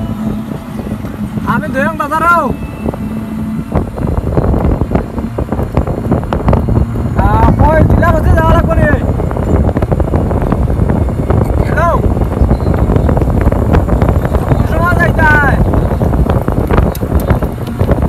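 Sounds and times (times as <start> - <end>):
truck rumbling on road: 0.0 - 18.0
wind buffeting microphone: 0.0 - 18.0.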